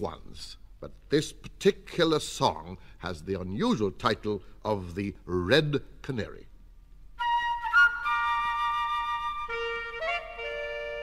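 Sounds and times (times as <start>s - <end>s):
held woodwind notes: 7.2s - 11.0s.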